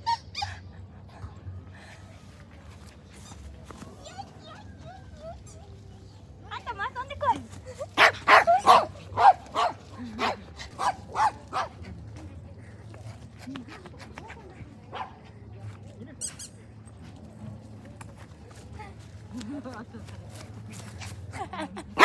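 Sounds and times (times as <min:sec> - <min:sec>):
dog barking: 0:08.0 - 0:11.7.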